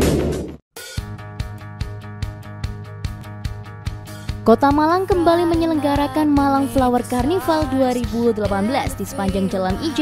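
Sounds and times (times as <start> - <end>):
background music with quick beat: 0.0 - 10.0.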